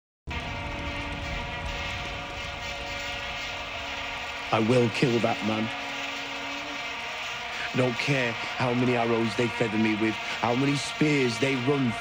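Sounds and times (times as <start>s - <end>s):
vuvuzelas blaring: 0.3s - 12.0s.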